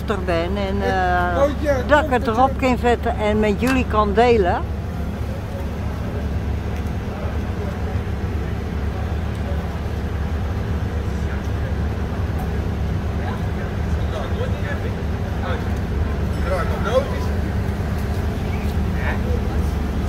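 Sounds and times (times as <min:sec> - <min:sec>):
excavator diesel engine humming: 0:00.0 - 0:20.0.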